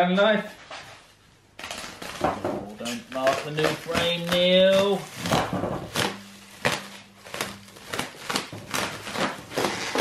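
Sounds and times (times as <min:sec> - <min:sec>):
plastic wrap crinkling and tearing: 0:01.6 - 0:10.0.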